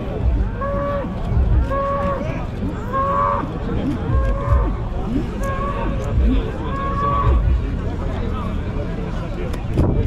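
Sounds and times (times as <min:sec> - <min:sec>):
bull bellowing: 0:00.2 - 0:07.5.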